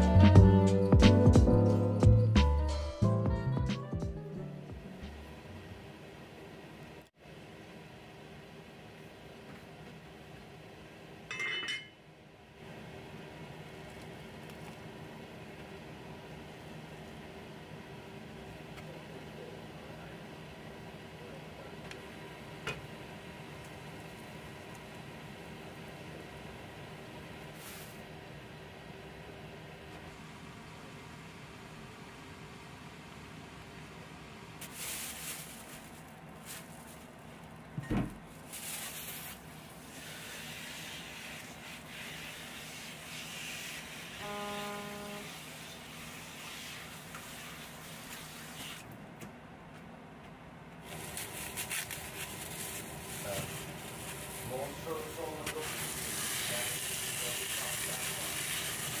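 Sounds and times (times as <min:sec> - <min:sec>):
low kitchen hum: 0:00.0 - 0:59.0
pot lid clinking: 0:11.3 - 0:12.0.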